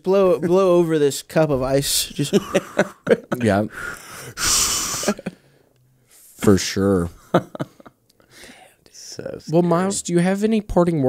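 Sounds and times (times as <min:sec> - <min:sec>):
person blowing out breath: 0:03.7 - 0:05.6.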